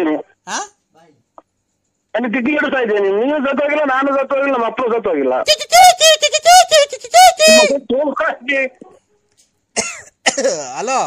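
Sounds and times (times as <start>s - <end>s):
high-pitched rapid laugh: 5.5s - 7.8s.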